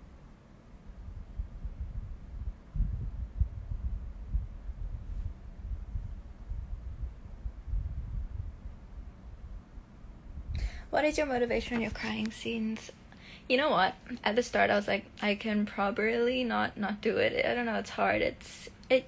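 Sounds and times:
low irregular rumbling: 0.7s - 18.3s.

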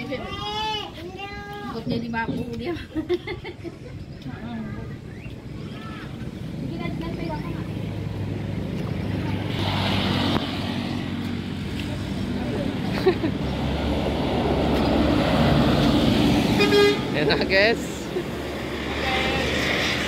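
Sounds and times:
vehicle engine and tyre noise: 3.6s - 20.0s
car horn toot: 16.5s - 17.2s.

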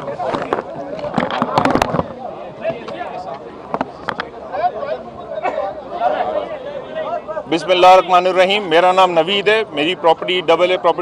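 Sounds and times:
microphones knocking and clattering: 0.0s - 4.3s.

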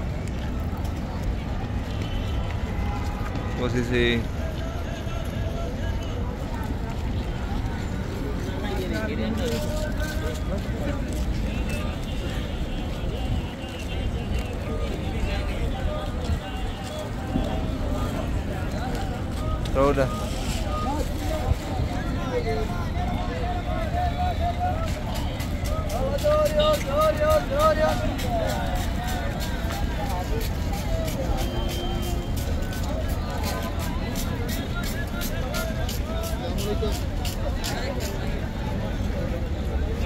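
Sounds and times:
faint voices of people: 0.0s - 40.0s
people chattering: 0.0s - 40.0s
road traffic rumble: 0.0s - 40.0s.

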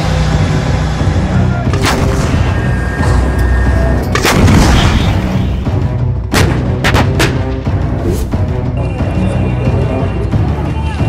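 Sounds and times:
background music: 0.0s - 11.0s
artillery booms: 4.1s - 5.4s.

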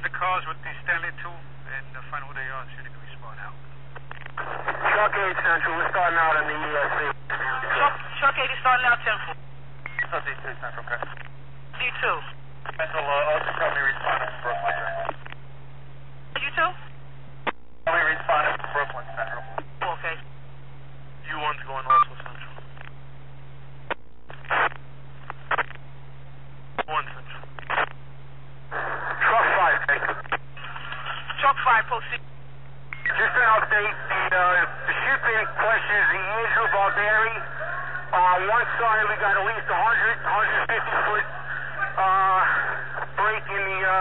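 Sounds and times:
radio voice transmissions: 0.0s - 3.6s, 4.4s - 15.3s, 17.8s - 20.3s, 21.2s - 22.7s, 24.3s - 24.8s, 26.8s - 28.0s, 28.7s - 32.2s, 32.9s - 44.0s
steady low hum: 0.0s - 44.0s
radio transmission bursts: 4.3s - 11.2s, 11.8s - 15.3s, 23.9s - 24.8s, 26.8s - 28.0s, 28.7s - 32.2s, 33.0s - 44.0s.

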